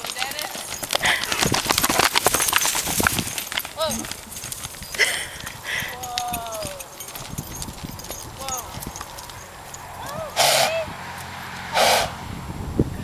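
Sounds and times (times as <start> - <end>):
horse hoofbeats on grass: 0.0 - 11.4
loud breathy horse snorts: 10.4 - 10.8, 11.7 - 12.2.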